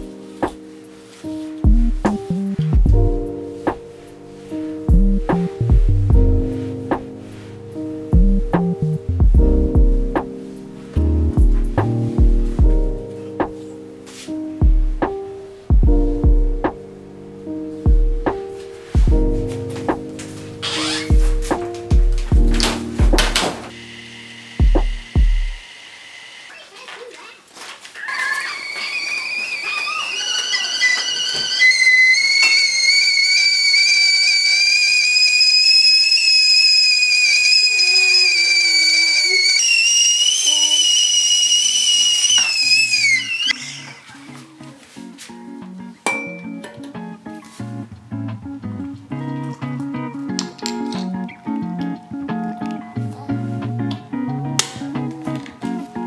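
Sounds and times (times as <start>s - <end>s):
background music: 0.0s - 25.6s, 42.8s - 56.0s
kettle whistling: 20.6s - 21.2s, 22.6s - 26.6s, 28.0s - 44.3s.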